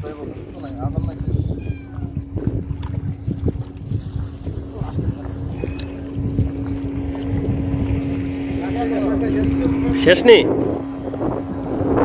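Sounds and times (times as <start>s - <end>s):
motorboat engine humming: 0.0s - 12.0s
wind rumbling on microphone: 0.0s - 12.0s.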